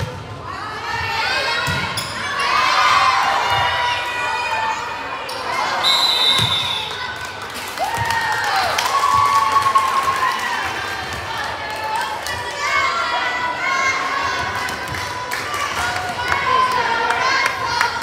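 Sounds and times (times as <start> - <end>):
people shouting and cheering: 0.0 - 18.0.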